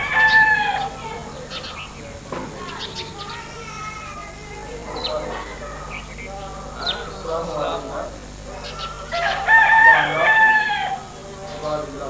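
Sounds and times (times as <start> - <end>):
rooster crowing: 0.0 - 1.2, 8.5 - 11.3.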